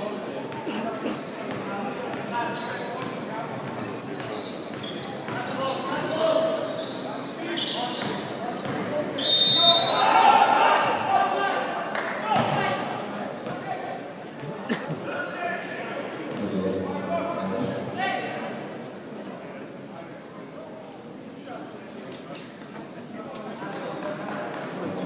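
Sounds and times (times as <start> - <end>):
scattered voices in hall: 0.0 - 25.0.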